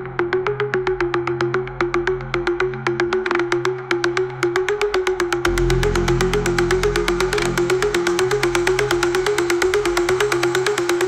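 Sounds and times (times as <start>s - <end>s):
rapid hi-hat pattern: 0.2s - 11.0s
sustained low bass: 5.4s - 10.6s
synth riff: 5.4s - 11.0s.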